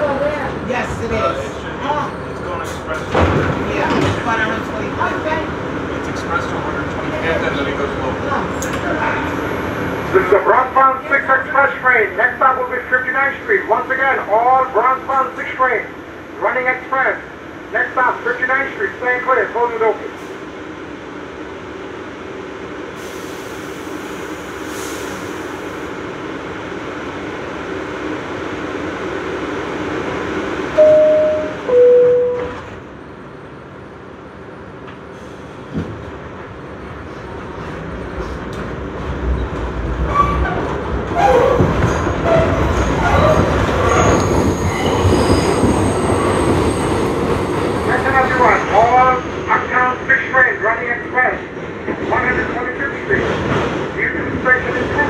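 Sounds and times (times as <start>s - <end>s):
subway car humming: 0.0s - 55.0s
train motors and wheels rumbling: 0.0s - 55.0s
two-note door chime: 30.8s - 32.7s.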